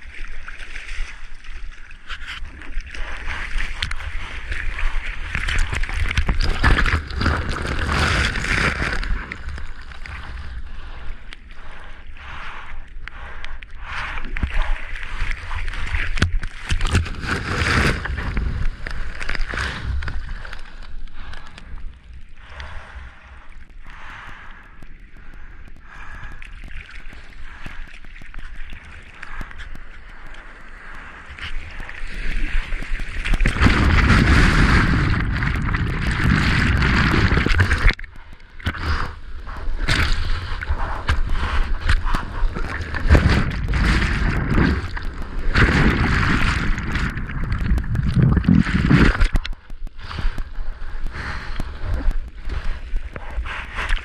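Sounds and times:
water splashing against surfboard: 0.0s - 10.6s, 14.2s - 21.5s, 31.2s - 54.0s
whitewater rushing over board: 32.6s - 38.0s, 38.7s - 50.2s
wind on microphone: 32.7s - 38.0s, 38.8s - 49.6s.

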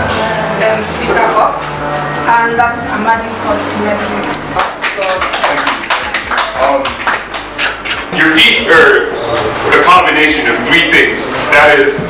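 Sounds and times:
audience clapping: 4.2s - 8.6s.

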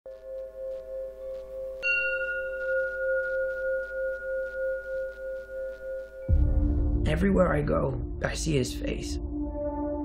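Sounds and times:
bell-like ringing tone: 0.2s - 6.6s.

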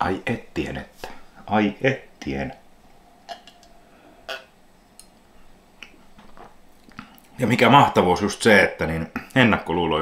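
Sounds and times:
person sipping and swallowing: 3.2s - 4.5s.

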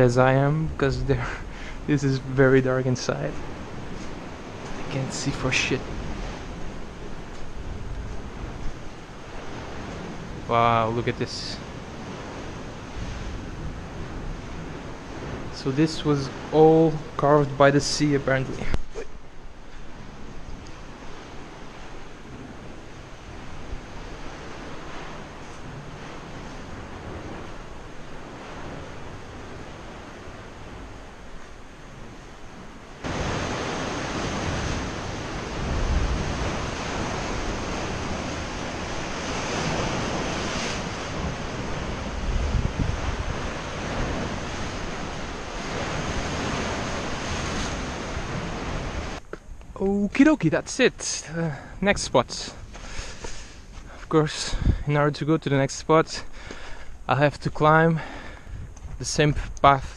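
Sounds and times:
sea surf washing against rocks: 0.0s - 59.9s
waves breaking: 0.0s - 59.9s.

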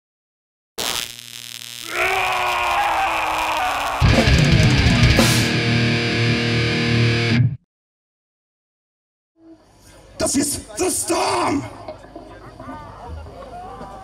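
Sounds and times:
heavy metal distorted guitar: 1.8s - 7.6s.

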